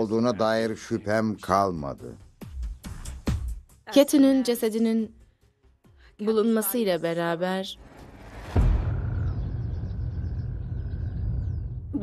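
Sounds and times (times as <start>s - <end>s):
deep steady rumble: 8.5s - 12.0s
faint birds chirping: 9.0s - 12.0s.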